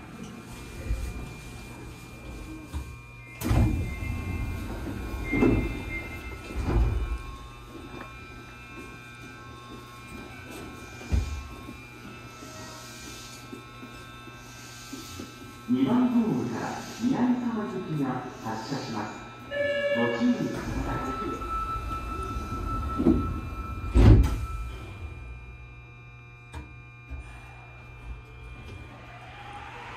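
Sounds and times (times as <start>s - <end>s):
train doors sliding open: 3.3s - 7.5s, 20.1s - 25.4s
voice announcement: 15.7s - 22.9s.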